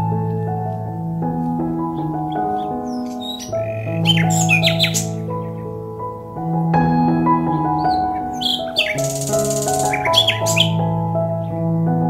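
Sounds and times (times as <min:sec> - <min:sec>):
gentle music of held notes: 0:00.0 - 0:12.0
birds chirping: 0:01.8 - 0:06.2, 0:07.6 - 0:10.9.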